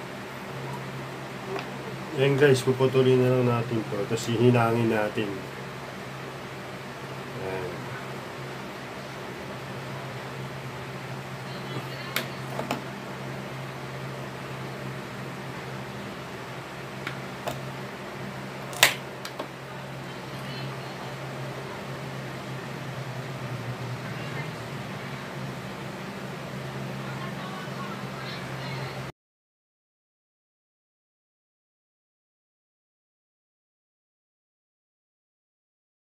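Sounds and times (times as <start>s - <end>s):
low steady hum: 0.0s - 29.1s.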